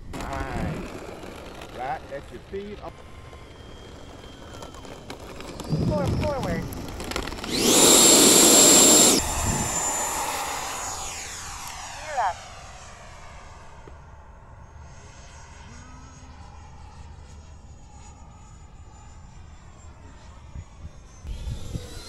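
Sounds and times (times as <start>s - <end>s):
rc jet rushing whine: 0.0s - 22.0s.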